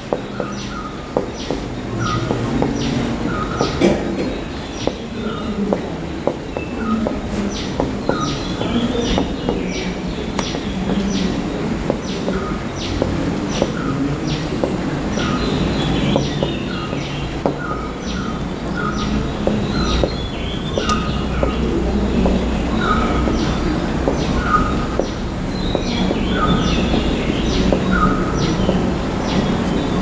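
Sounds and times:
birds chirping: 0:00.0 - 0:30.0.

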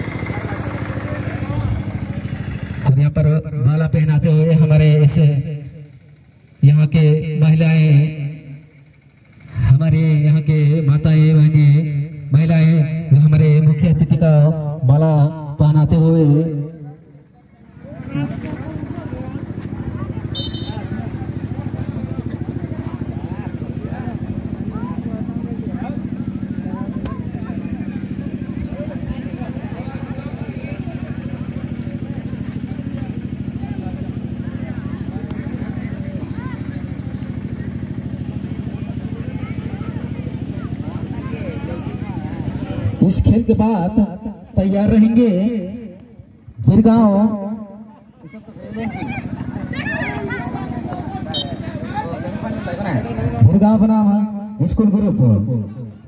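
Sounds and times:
distant crowd chatter: 0:00.0 - 0:56.0
small engine idling: 0:00.0 - 0:56.0.

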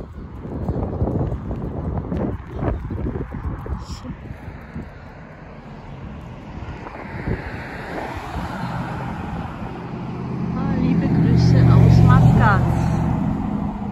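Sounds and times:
cars driving past: 0:00.0 - 0:13.9.

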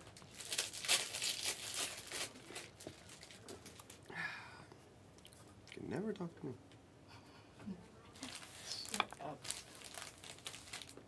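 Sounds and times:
foil wrappers crinkling: 0:00.0 - 0:04.0, 0:08.2 - 0:11.0.

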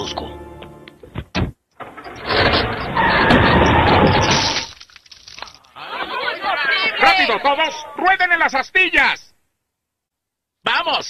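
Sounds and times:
glass smashing crash: 0:02.2 - 0:05.7.

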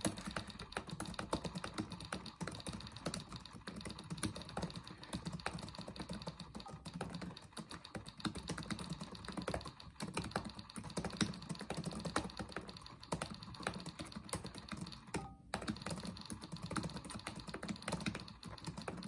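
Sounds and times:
laptop keyboard typing: 0:00.0 - 0:19.0.

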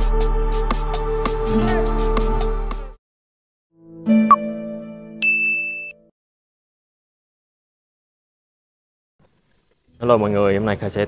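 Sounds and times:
electronic chime: 0:05.2 - 0:06.0.

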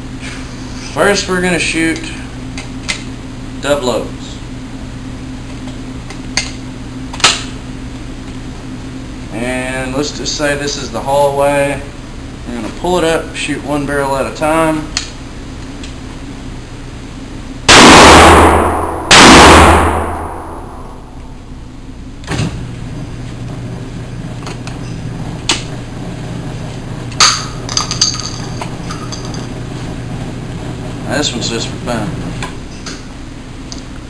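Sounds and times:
shotgun shots: 0:17.7 - 0:21.0.

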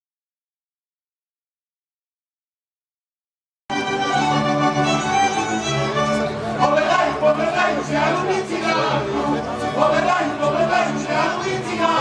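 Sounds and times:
fiddles: 0:03.7 - 0:09.7
accordion: 0:03.7 - 0:12.0
double bass: 0:03.7 - 0:12.0.

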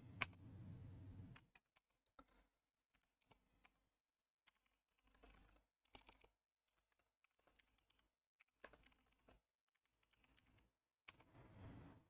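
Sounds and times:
typing on computer keyboard: 0:02.2 - 0:11.3.

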